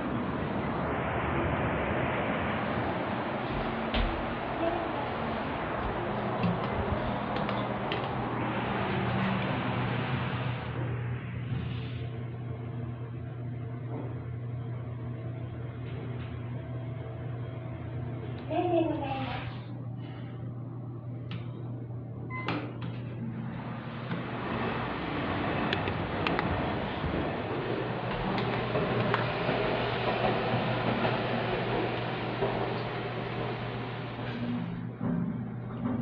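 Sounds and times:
elevator mechanical hum: 0.0 - 36.0
elevator button beep: 22.3 - 22.7.

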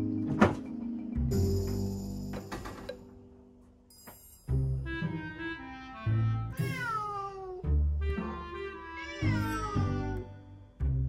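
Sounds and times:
background music: 0.0 - 11.0
cat meowing: 6.6 - 7.6, 9.2 - 10.2.

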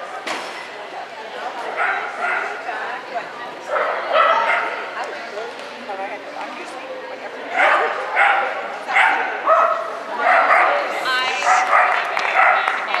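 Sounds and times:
dog barking: 1.8 - 2.6, 3.7 - 4.8, 7.5 - 12.9.

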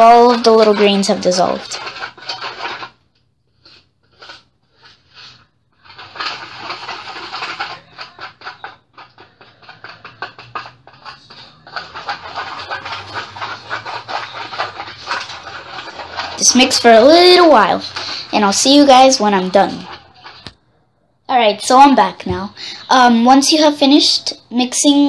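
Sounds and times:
plastic spoon stirring in bowl: 0.0 - 20.6.

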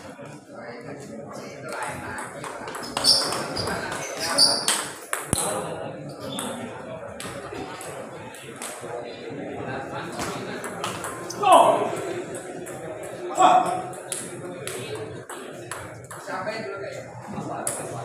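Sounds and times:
murmur of voices: 0.0 - 18.0.

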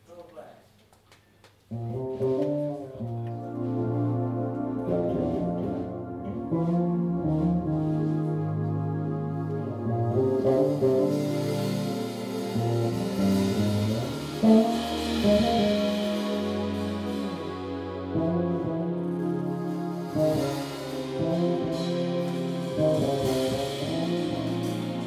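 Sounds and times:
electric bass notes: 1.7 - 25.0
cymbals: 1.8 - 25.0
sustained chords: 3.0 - 25.0.

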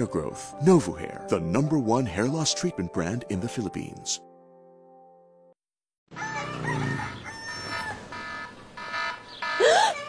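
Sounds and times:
rooster crowing: 6.1 - 10.0.

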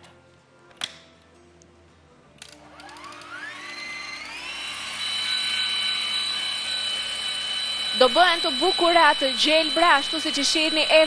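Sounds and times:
stand mixer motor whine: 2.6 - 11.0.

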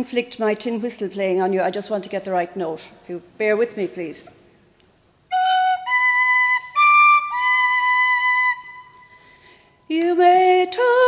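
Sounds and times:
tin whistle notes: 5.3 - 9.1.

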